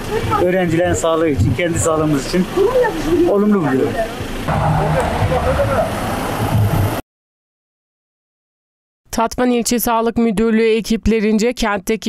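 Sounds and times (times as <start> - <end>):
indistinct voices: 0.0 - 6.2
vehicle engine and road noise: 0.0 - 7.0.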